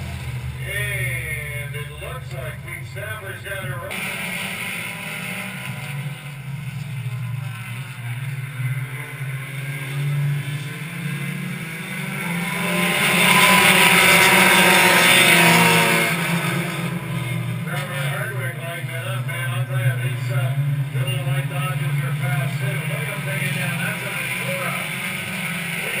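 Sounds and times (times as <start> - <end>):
race car engines droning: 0.0 - 26.0.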